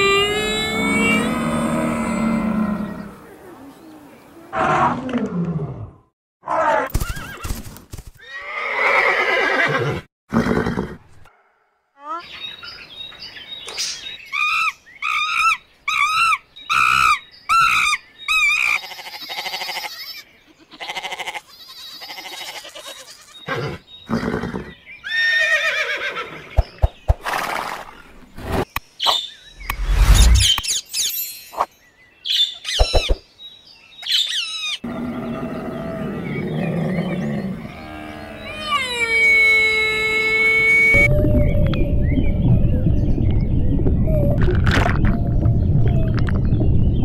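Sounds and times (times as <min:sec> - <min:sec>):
camels calling: 0:00.0 - 0:03.0.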